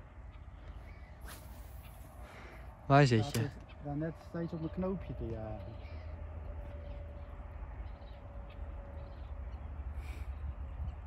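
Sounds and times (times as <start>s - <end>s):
distant bird calls: 0.0s - 11.0s.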